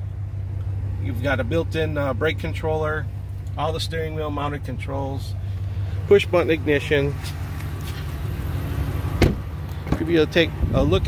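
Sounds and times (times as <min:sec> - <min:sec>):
low outdoor rumble: 0:00.0 - 0:11.0
truck door shutting: 0:09.1 - 0:10.1.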